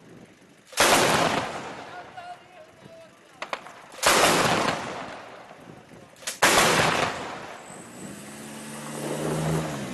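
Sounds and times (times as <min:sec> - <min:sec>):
vehicle engine running: 0:00.0 - 0:09.9
heavy gun blast with echo: 0:00.8 - 0:01.9, 0:03.4 - 0:05.4, 0:06.4 - 0:07.6.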